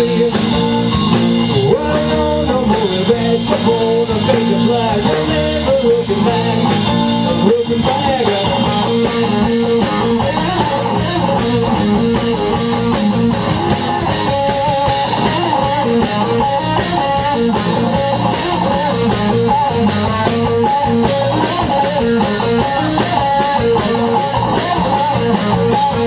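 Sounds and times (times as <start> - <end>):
bass guitar: 0.0 - 26.0
drum kit: 0.0 - 26.0
electric guitar bending notes: 0.0 - 26.0.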